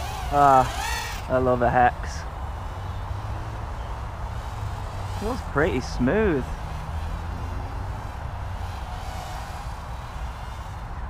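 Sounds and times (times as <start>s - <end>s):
drone motors whining: 0.0s - 11.0s.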